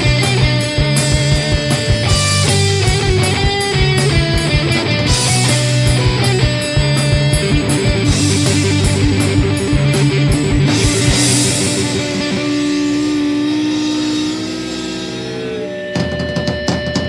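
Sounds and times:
instrumental rock music: 0:00.0 - 0:17.0.

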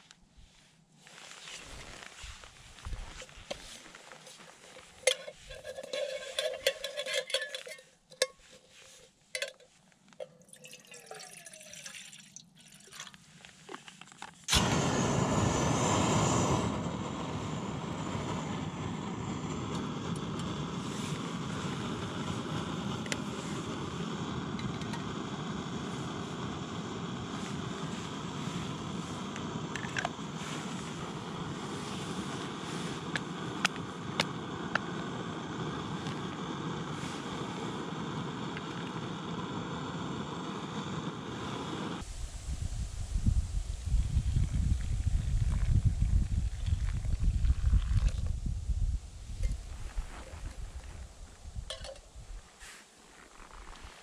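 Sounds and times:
water trickling into a pot: 0:10.2 - 0:13.2
gas burner hissing: 0:14.5 - 0:44.5.

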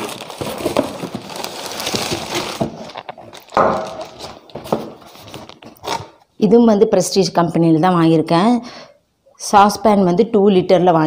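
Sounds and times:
cardboard and plastic rustling: 0:00.0 - 0:06.2.

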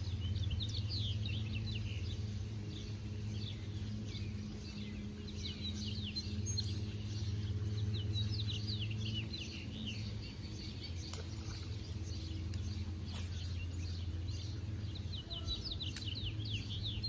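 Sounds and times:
small birds chirping: 0:00.0 - 0:17.0
steady low hum: 0:00.0 - 0:17.0.

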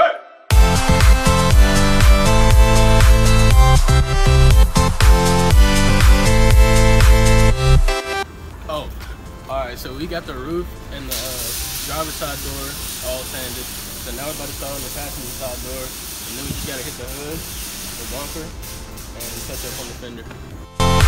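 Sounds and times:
man talking: 0:08.7 - 0:17.4, 0:18.0 - 0:18.6, 0:19.2 - 0:20.4
steady hiss: 0:10.8 - 0:20.6.

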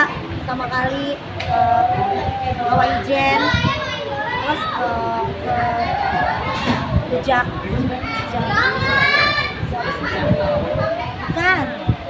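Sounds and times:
voices talking over one another: 0:00.0 - 0:12.0.

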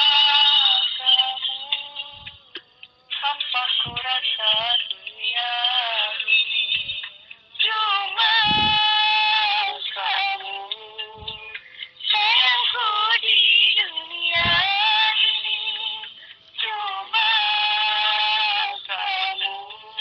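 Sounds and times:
person singing wavering notes: 0:00.0 - 0:20.0.

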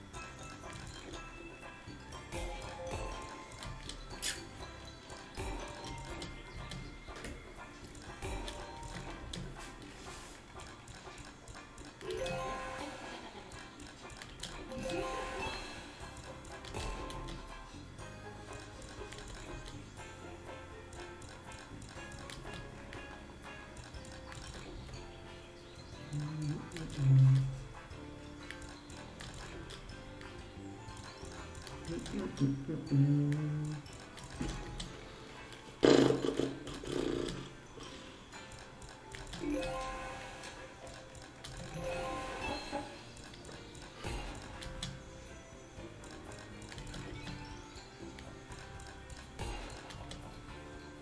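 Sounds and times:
slot machine background music: 0:00.0 - 0:51.0
slot reel sound effects: 0:39.4 - 0:40.8, 0:41.6 - 0:43.2.

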